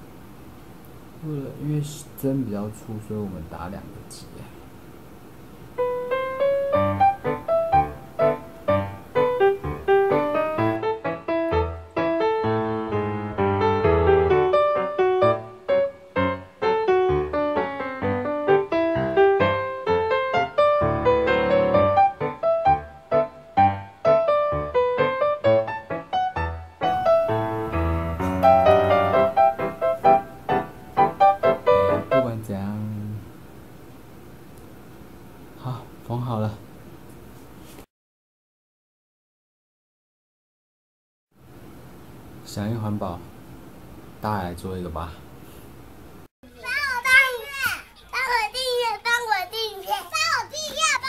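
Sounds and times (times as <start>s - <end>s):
piano music: 5.8s - 32.5s.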